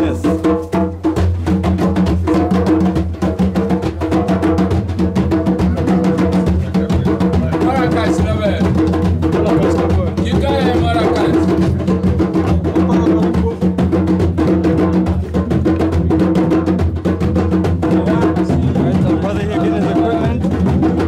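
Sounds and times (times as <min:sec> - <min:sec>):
djembe hand drums: 0:00.0 - 0:21.0
drum struck with wooden stick: 0:00.0 - 0:21.0.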